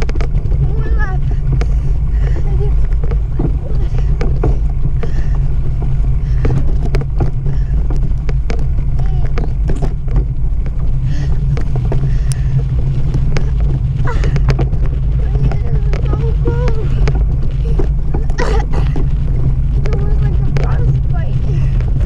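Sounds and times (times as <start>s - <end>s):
wind buffeting: 0.0s - 22.0s
faint voices: 13.2s - 21.9s.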